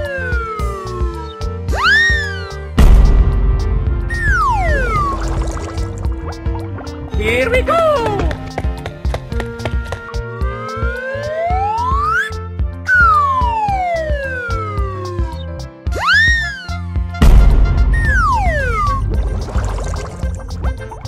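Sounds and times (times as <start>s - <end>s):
children's background music: 4.0s - 17.3s.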